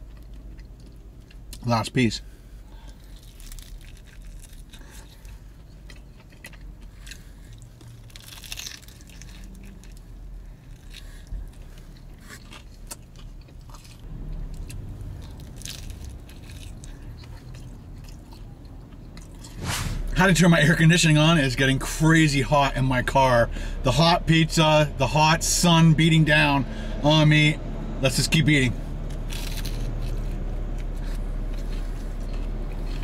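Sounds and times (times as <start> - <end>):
crunchy chewing: 0.0 - 1.6, 2.6 - 19.6, 29.1 - 33.0
steady low hum: 0.0 - 33.0.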